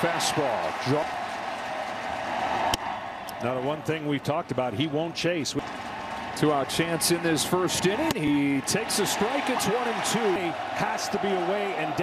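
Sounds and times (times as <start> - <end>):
ballpark crowd noise: 0.0 - 12.0.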